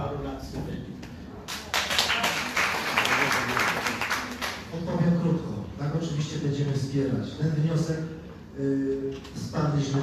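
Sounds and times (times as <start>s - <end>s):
audience applauding: 1.6s - 4.6s.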